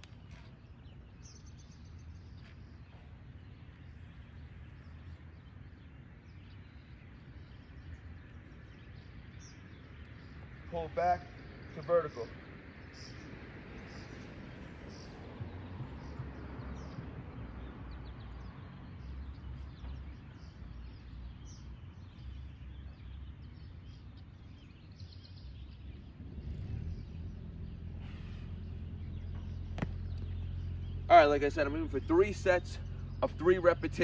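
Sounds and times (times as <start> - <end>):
steady low rumble: 0.0 - 34.0.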